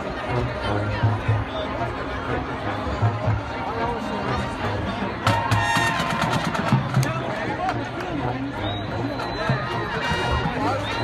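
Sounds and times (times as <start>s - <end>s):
marching band playing: 0.0s - 11.0s
spectators chattering: 0.0s - 11.0s.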